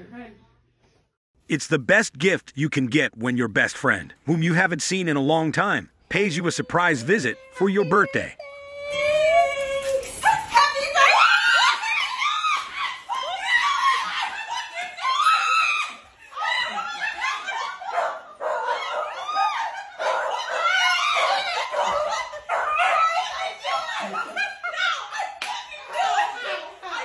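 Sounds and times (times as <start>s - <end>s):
women screaming with joy: 6.3s - 27.0s
laughter: 10.9s - 27.0s.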